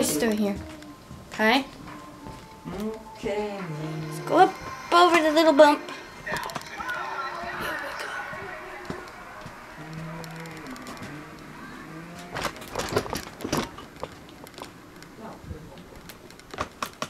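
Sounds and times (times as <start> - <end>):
low vocal moan: 9.5 - 12.7
wheelchair knocking and rattling: 12.1 - 14.8.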